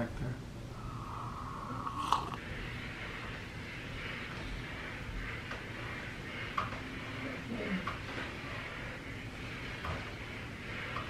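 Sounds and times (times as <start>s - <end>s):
slurping sip from mug: 0.8s - 2.5s.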